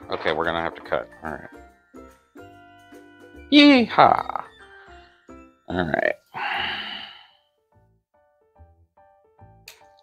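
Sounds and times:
light background music: 0.0s - 10.0s
long breathy sigh: 6.3s - 7.4s.

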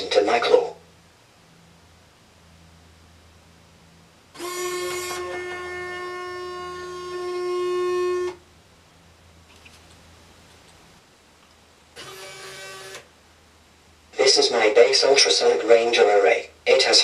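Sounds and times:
robot buzzy pitched tone: 4.4s - 8.4s.

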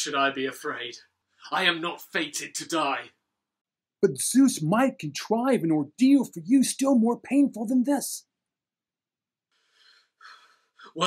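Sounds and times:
man breathing in: 9.5s - 10.9s.

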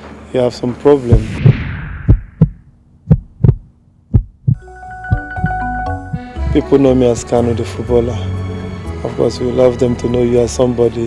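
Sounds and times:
heartbeat thumps: 1.1s - 6.6s
soft music with held tones: 4.6s - 11.0s.

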